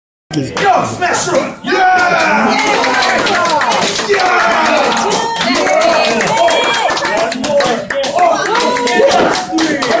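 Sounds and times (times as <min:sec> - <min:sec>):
voices talking and calling out: 0:00.3 - 0:10.0
audience clapping: 0:02.0 - 0:10.0.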